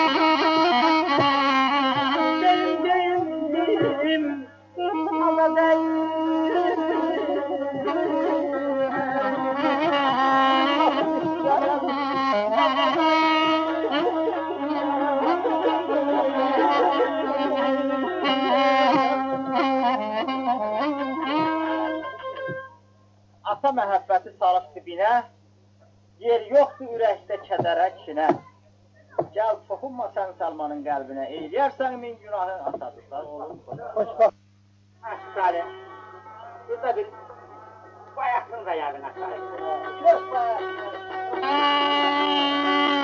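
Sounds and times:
wind instrument melody: 0.0 - 22.8, 35.0 - 36.9, 39.1 - 43.0
person speaking: 26.2 - 34.4.

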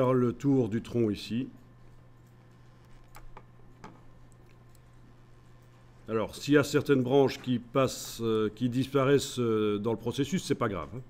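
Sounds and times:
low electrical hum: 0.0 - 11.0
computer mouse clicks: 2.2 - 4.9.

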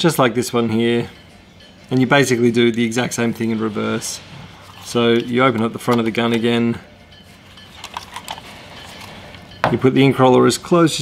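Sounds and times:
plastic pricing gun clicks and rattles: 7.7 - 9.1.

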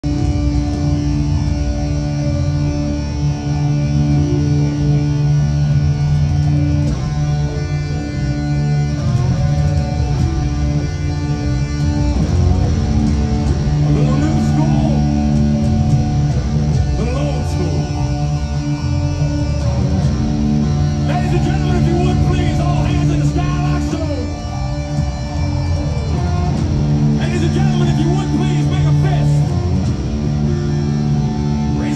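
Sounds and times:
live rock band playing: 0.0 - 31.9.

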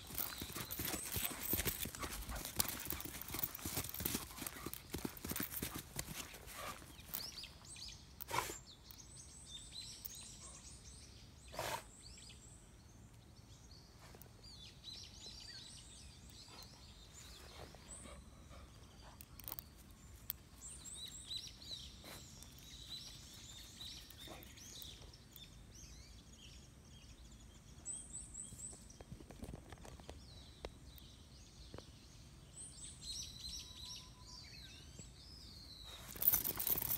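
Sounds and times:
faint birds chirping: 0.0 - 36.9.

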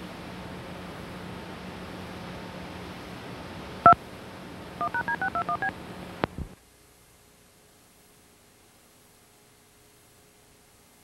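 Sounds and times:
touch-tone beeps: 4.8 - 5.7.

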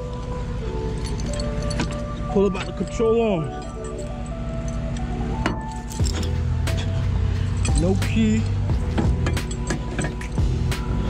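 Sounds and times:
background music: 0.0 - 11.0
steel chain clinking: 0.8 - 10.7.

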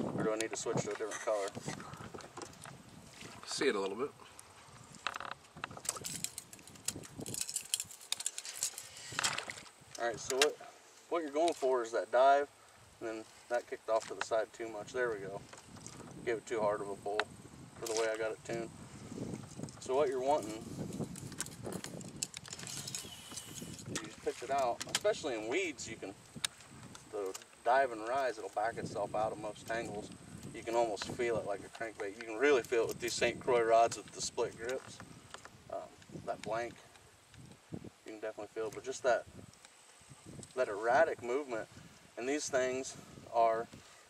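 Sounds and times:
light ticks and rattles of tackle: 0.2 - 12.4, 13.0 - 41.6
fishing reel clicks and rattles: 5.1 - 9.3, 20.9 - 24.1
fishing reel cranking: 22.2 - 24.0.

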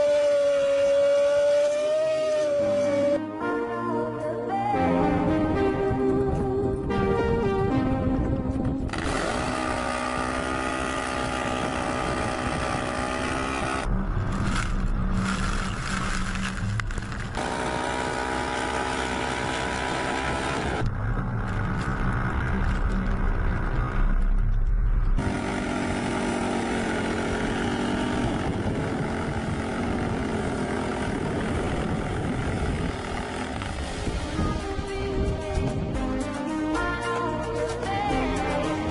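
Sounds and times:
engines revving under load: 0.0 - 3.2, 8.9 - 24.5, 25.1 - 34.8.

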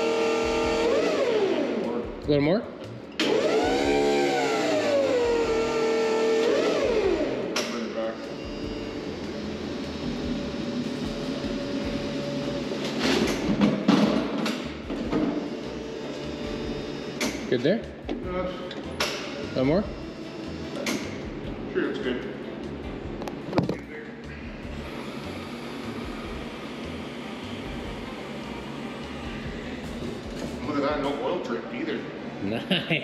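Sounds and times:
forklift motor whining: 0.0 - 2.0, 3.1 - 17.5, 18.9 - 21.6, 24.7 - 30.7.

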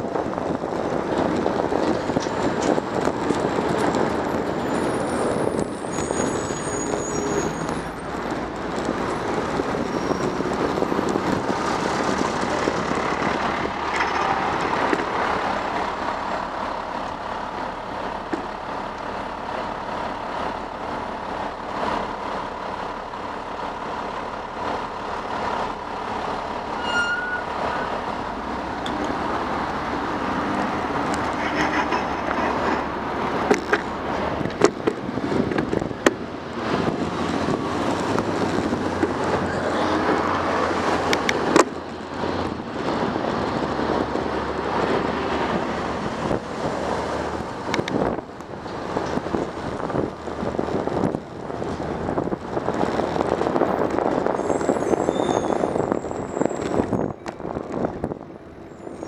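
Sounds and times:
heavy truck driving alongside: 0.0 - 59.0
street traffic: 0.0 - 59.0.

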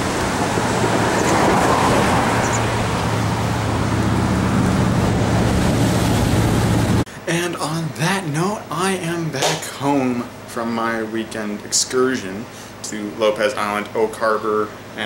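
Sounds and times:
highway traffic rushing: 0.0 - 7.1
man talking: 7.2 - 15.0.

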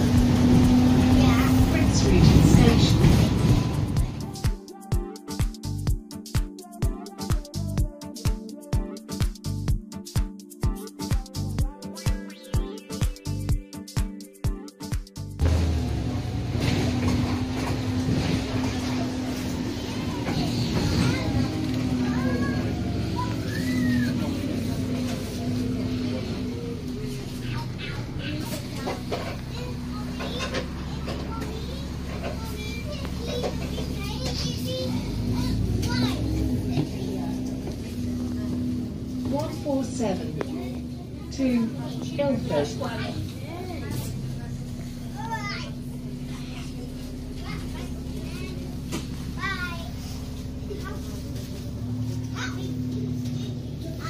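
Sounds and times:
voices: 0.0 - 4.2, 15.8 - 54.0
bus engine droning: 0.0 - 4.4, 15.2 - 54.0
electronic music: 4.3 - 15.4.

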